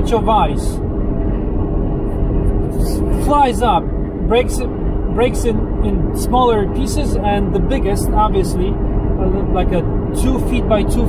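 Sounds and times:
car cabin road rumble: 0:00.0 - 0:11.0
steady engine hum: 0:00.0 - 0:11.0.

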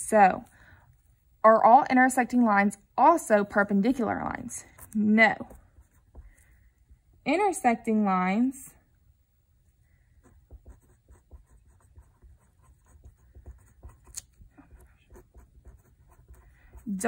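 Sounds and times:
pencil scratching on paper: 0:04.0 - 0:06.6, 0:10.1 - 0:17.0.

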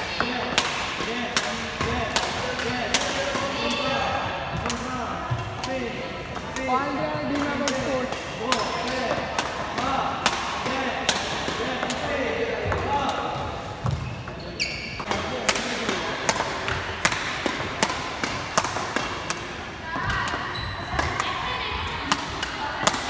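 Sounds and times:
badminton rackets hitting shuttlecocks: 0:00.0 - 0:14.0, 0:15.0 - 0:23.0
voices talking: 0:00.0 - 0:16.8.

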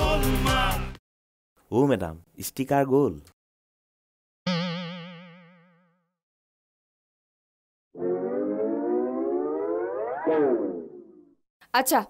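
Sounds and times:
wobbling boing: 0:04.5 - 0:06.1
rising whistle-like tone: 0:08.0 - 0:11.4.

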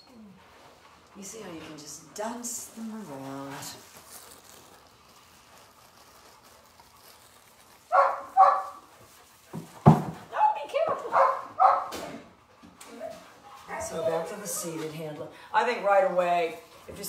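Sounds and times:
puppy yipping: 0:07.9 - 0:08.8, 0:10.3 - 0:12.0.

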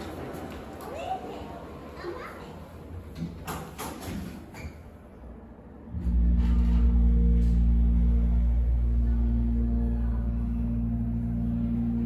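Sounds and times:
elevator pump motor humming: 0:05.9 - 0:12.0.

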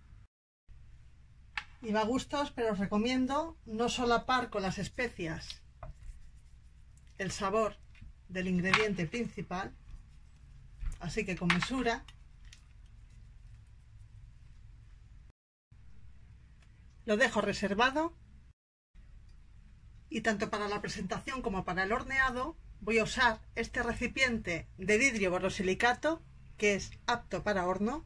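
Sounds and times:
fingers rubbing raw chicken: 0:05.4 - 0:07.2, 0:09.6 - 0:10.8, 0:12.0 - 0:14.8.

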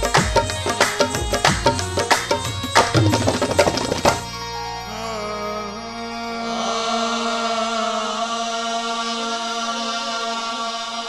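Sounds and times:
harmonium drone: 0:00.0 - 0:11.0
person singing long wavering note: 0:04.8 - 0:11.0.

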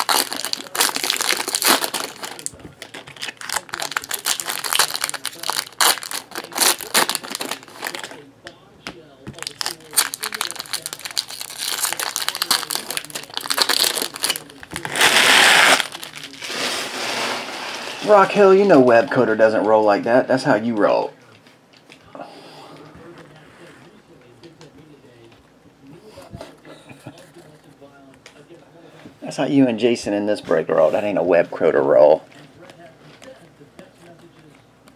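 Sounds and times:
foil wrappers crinkling: 0:00.0 - 0:08.3, 0:09.3 - 0:19.3.

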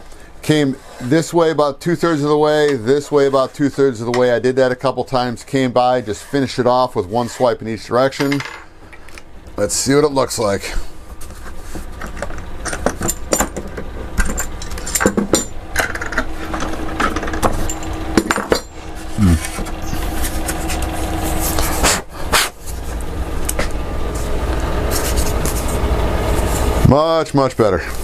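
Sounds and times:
low steady hum: 0:00.0 - 0:28.0
metal tools clinking on workbench: 0:08.2 - 0:08.7, 0:12.6 - 0:18.8.

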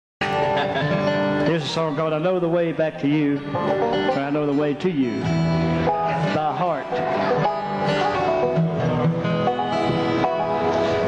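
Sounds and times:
bluegrass string band playing: 0:00.2 - 0:11.0.

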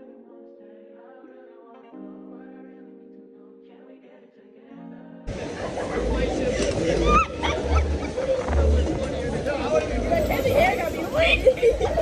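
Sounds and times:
riders' voices: 0:05.3 - 0:12.0.

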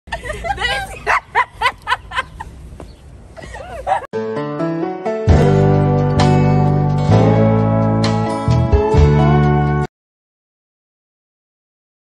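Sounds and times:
women laughing: 0:00.1 - 0:02.6, 0:03.4 - 0:04.1.

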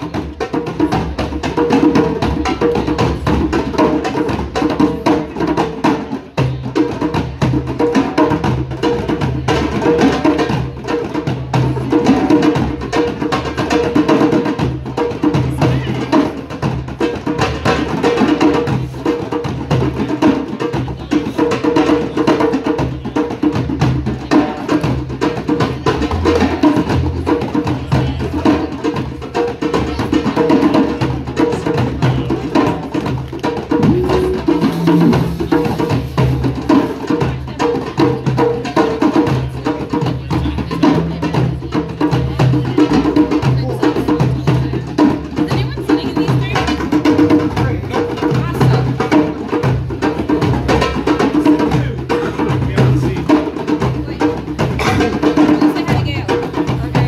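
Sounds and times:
group of hand drums playing: 0:00.0 - 0:57.0.

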